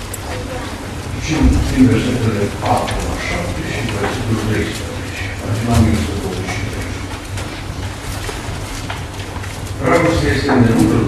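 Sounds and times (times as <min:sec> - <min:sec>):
steady low hum: 0:00.0 - 0:11.0
man speaking: 0:01.1 - 0:07.1, 0:09.8 - 0:11.0.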